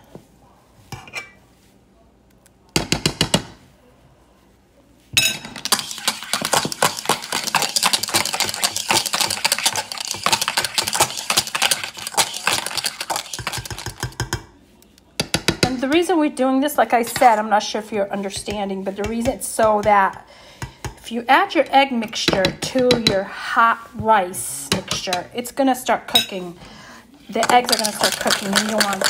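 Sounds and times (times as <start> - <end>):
whisk rattling against bowl: 5.6 - 14.4, 27.4 - 29.0.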